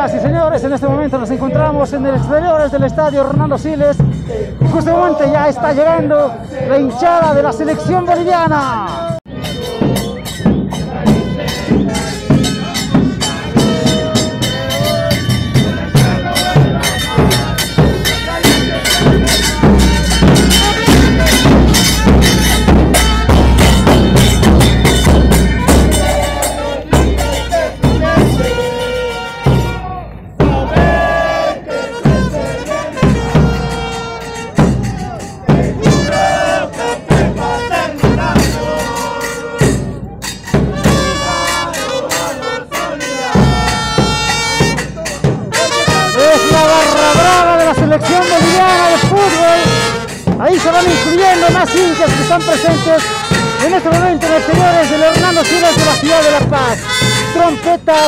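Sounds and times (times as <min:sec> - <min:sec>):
bass drums beating: 0:00.0 - 0:58.0
crowd shouting: 0:00.0 - 0:58.0
trumpets and brass: 0:00.0 - 0:58.0.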